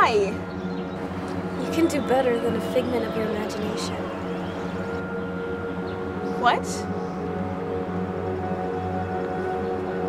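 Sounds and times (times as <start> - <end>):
soft sustained background music: 0.0 - 10.0.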